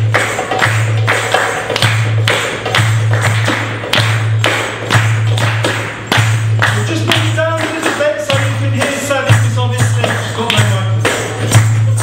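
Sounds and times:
goblet drum playing: 0.0 - 12.0.

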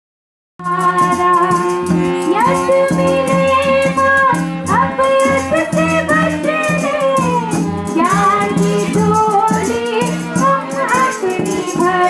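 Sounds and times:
dholak drum beat: 0.6 - 12.0.

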